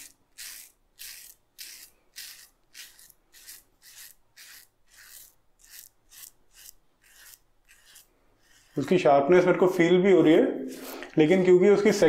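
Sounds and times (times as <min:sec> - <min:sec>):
razor scraping stubble: 0:00.0 - 0:12.0.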